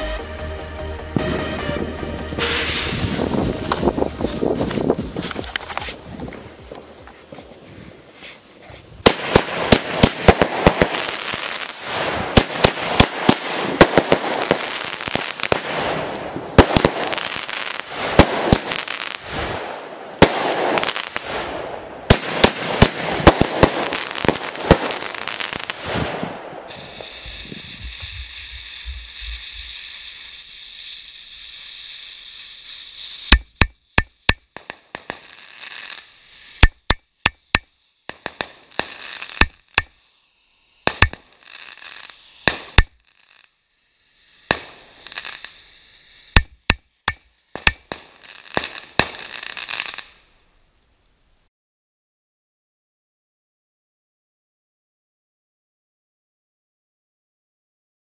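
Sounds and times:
sharp firework bangs: 1.2 - 6.0, 8.8 - 31.0, 40.8 - 43.0, 44.4 - 45.5
firework shots and crackling bursts: 1.2 - 50.3
hiss of spark showers: 2.4 - 50.3.

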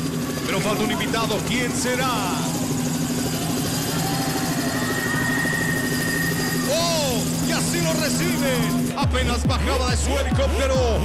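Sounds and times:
helicopter sound effect: 0.0 - 11.0
thin high tone: 0.1 - 9.0.

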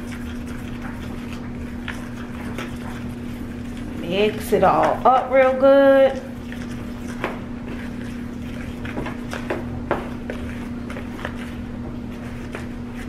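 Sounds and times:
fork stirring dough in bowl: 0.0 - 13.0.

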